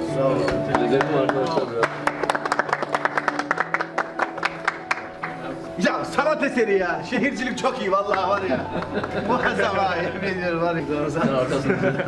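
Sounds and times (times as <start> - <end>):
background music: 0.0 - 12.0
sharp hand claps: 0.5 - 5.8, 8.0 - 9.2.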